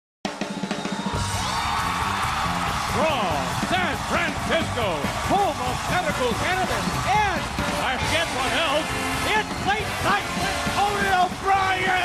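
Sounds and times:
band theme music with drums: 0:00.3 - 0:12.0
announcer speaking: 0:03.0 - 0:12.0.

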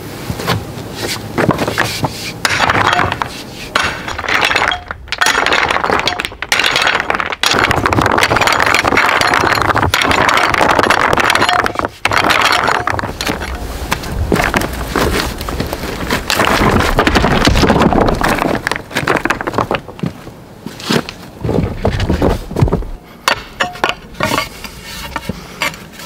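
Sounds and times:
rock rubble clattering: 0:01.4 - 0:24.5.

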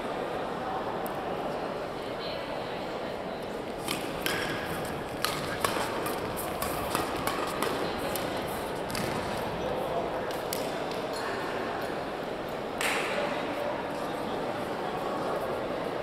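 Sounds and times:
murmur of voices: 0:00.0 - 0:16.0
racket hitting shuttlecock: 0:03.8 - 0:08.3, 0:08.9 - 0:09.3.

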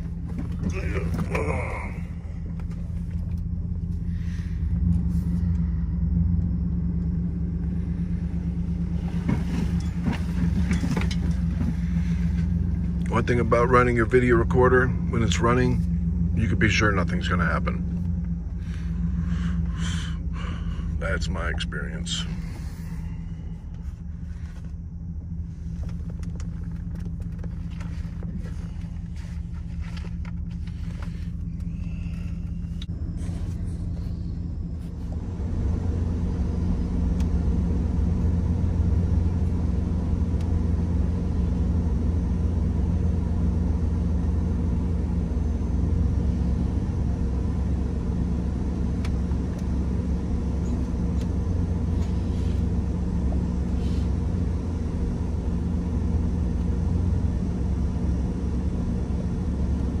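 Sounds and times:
truck engine and tyres rumbling: 0:00.0 - 1:00.0.

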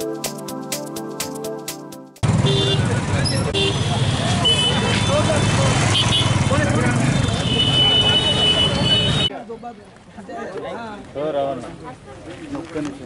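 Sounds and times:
vehicle engines rumbling: 0:02.2 - 0:09.3
crowd voices talking: 0:02.9 - 0:13.0.

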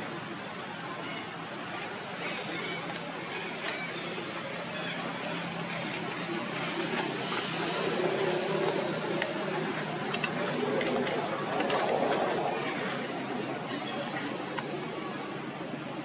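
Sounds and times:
indistinct voices murmuring: 0:00.0 - 0:16.0.

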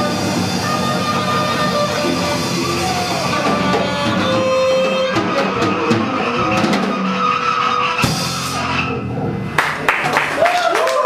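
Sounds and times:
held horn notes: 0:00.0 - 0:09.2
small jazz band playing: 0:00.0 - 0:10.2
loud drum hit: 0:08.0 - 0:08.8.

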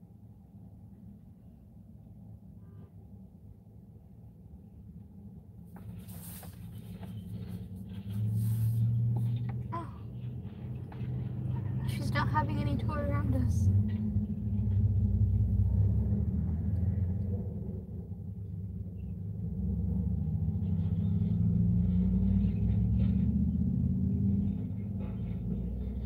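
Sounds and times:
car engine idling: 0:05.7 - 0:19.6.

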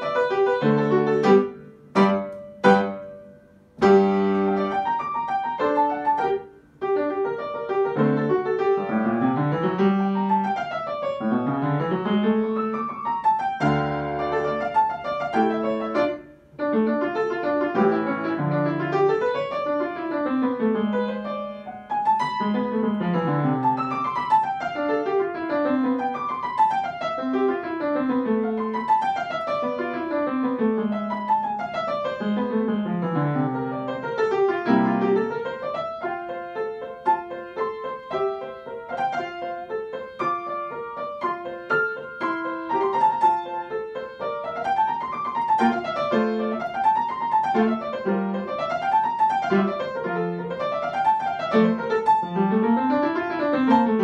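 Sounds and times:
piano playing classical piece: 0:00.0 - 0:54.0.

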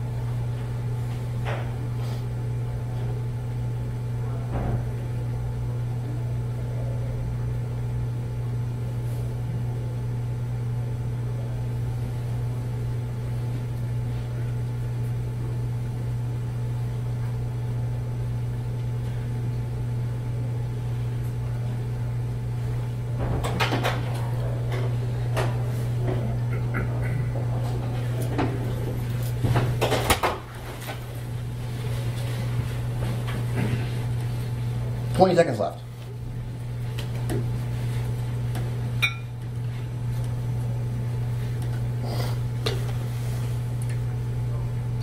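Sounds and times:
low room hum: 0:00.0 - 0:45.0.

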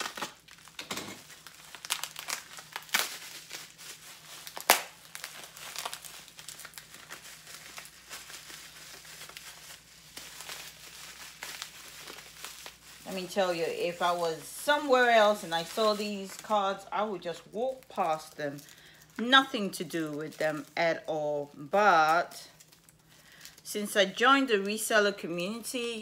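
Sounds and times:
plastic wrapping crinkling: 0:00.0 - 0:26.0.

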